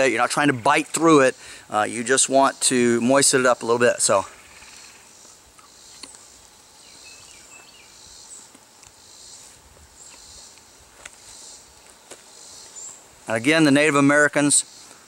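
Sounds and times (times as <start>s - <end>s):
insects buzzing: 0.0s - 15.0s.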